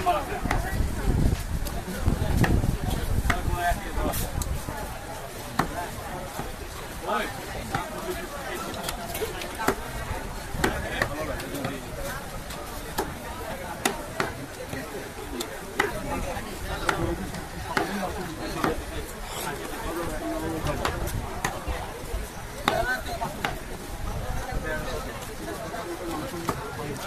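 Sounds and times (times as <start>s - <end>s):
cleaver chopping meat on wood: 10.6s - 11.8s, 12.9s - 13.2s, 13.8s - 14.4s, 16.8s - 17.1s, 17.7s - 18.0s, 22.6s - 23.6s.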